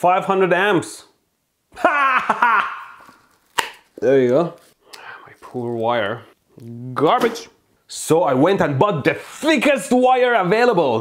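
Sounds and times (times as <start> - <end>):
man laughing loudly: 1.7 - 3.2.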